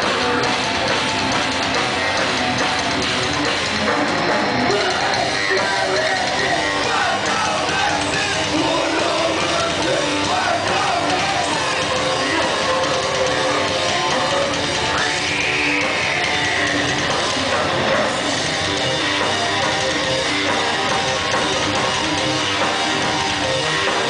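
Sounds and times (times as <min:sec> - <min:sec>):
drum kit: 0:00.0 - 0:24.0
electric guitar: 0:00.0 - 0:24.0.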